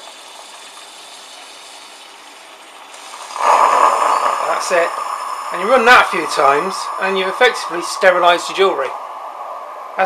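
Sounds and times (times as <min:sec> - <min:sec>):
espresso machine hissing: 0:02.9 - 0:09.0.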